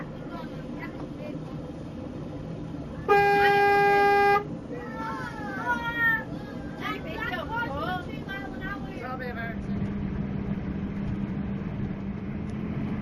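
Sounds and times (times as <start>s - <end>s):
moving vehicle rumble: 0.0s - 13.0s
vehicle horn blast: 3.1s - 4.5s.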